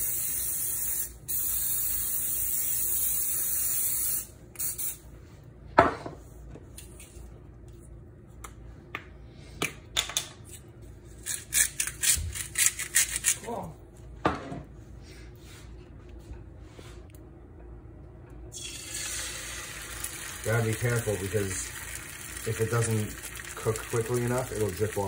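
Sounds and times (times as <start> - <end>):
cooking spray hissing: 0.0 - 5.0, 18.5 - 25.0.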